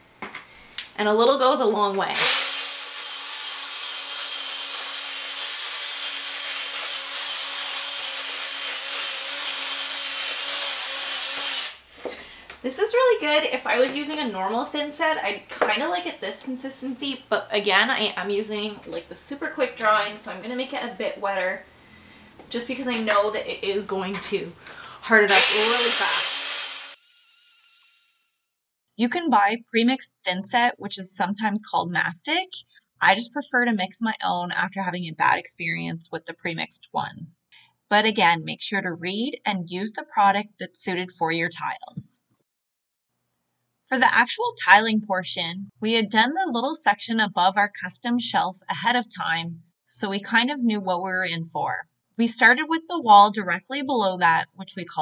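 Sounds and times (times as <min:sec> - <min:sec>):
cordless drill motor running: 0:02.2 - 0:11.9, 0:25.3 - 0:27.2.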